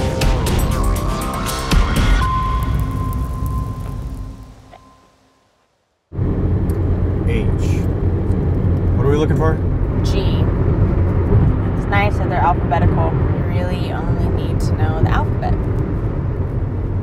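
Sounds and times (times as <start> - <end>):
intro music: 0.0 - 5.3
car cabin road and engine rumble: 6.2 - 17.0.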